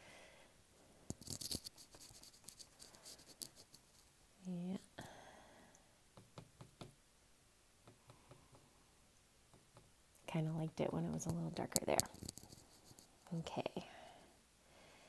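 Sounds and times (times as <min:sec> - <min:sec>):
paintbrush scratching on paper: 0:01.2 - 0:04.2, 0:10.8 - 0:13.5.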